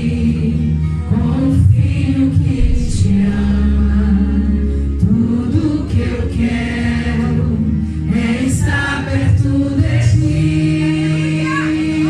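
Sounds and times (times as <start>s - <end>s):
voices singing worship song: 0.0s - 12.0s
low sustained accompaniment: 2.5s - 8.2s.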